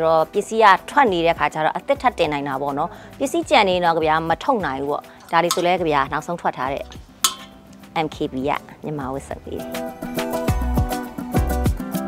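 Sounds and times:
woman talking: 0.0s - 7.0s, 8.0s - 9.7s
faint background music: 0.0s - 12.0s.

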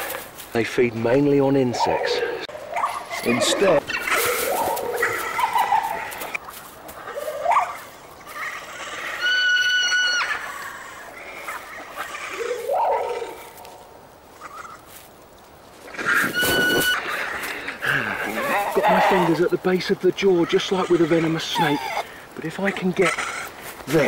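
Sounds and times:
piping creature cry: 8.3s - 13.5s, 15.9s - 19.5s, 20.2s - 24.0s.

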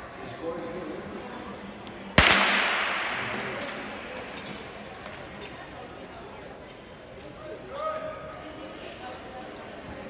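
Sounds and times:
starting pistol crack with echo: 2.2s - 4.2s.

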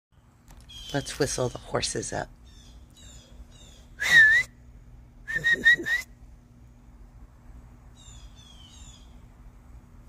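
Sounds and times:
person whistling: 4.0s - 4.5s, 5.3s - 6.1s.

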